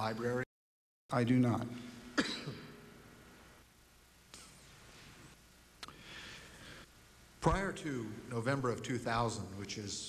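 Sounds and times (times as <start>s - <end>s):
person clearing throat: 2.2s - 2.9s.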